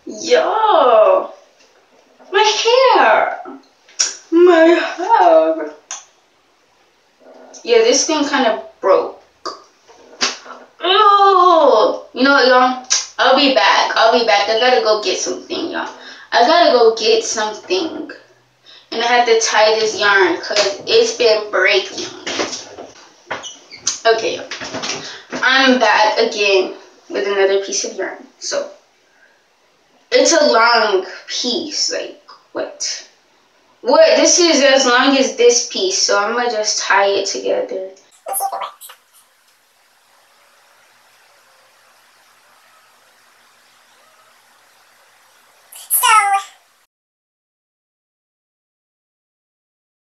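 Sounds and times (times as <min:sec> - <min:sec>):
faint steady hiss: 0:00.0 - 0:46.9
faint high squeaks: 0:38.2 - 0:39.4.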